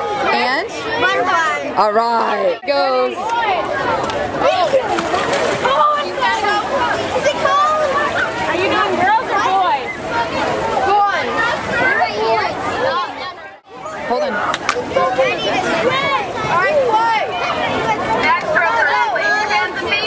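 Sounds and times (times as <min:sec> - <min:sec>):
crowd babble: 0:00.0 - 0:20.0.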